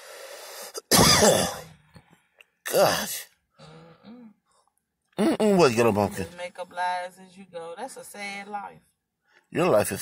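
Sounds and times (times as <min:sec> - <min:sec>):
man coughing: 0:00.7 - 0:01.7, 0:05.2 - 0:05.7.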